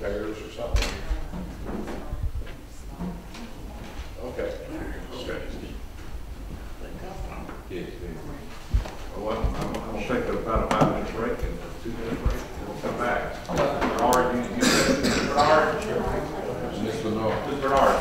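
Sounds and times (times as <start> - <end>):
people chattering: 6.4 - 18.0
sharp knocks: 10.5 - 11.2.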